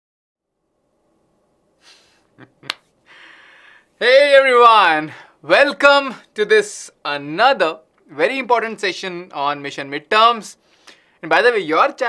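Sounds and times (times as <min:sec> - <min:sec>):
hands snapping or clapping: 0:02.6 - 0:02.9.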